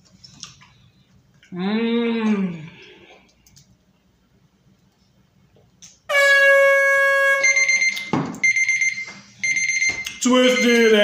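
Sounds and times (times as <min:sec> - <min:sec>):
long low alarm buzz: 0:06.1 - 0:11.0
high beeping tone: 0:07.2 - 0:11.0.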